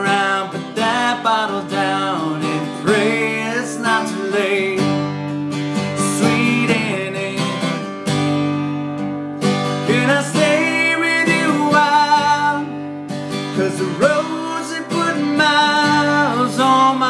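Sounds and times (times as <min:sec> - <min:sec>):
man singing: 0:00.0 - 0:05.2, 0:05.8 - 0:08.0, 0:09.8 - 0:17.0
acoustic guitar strummed: 0:00.0 - 0:17.0.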